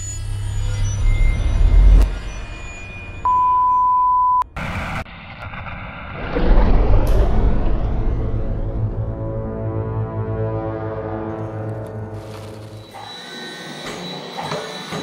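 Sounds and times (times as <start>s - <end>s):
high beep tone: 0.6s - 4.4s
burst of noise: 4.6s - 9.3s
deep rumble: 4.6s - 10.9s.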